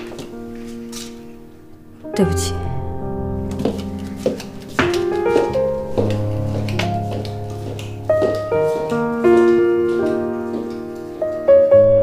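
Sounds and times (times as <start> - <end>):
slow piano melody: 0.0 - 12.0.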